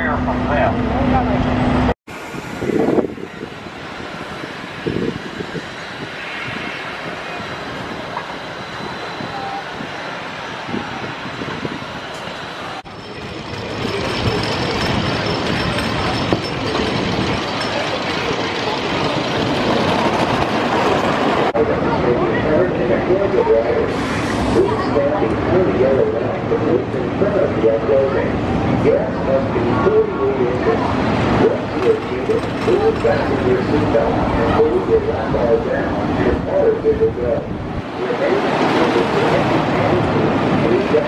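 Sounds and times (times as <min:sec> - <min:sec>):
roller coaster rumbling on track: 0:00.0 - 0:41.0
amusement park background noise: 0:02.6 - 0:41.0.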